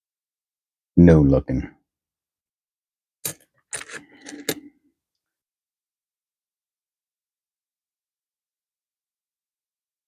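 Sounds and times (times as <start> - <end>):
coins clicking and clinking: 3.2 - 4.6.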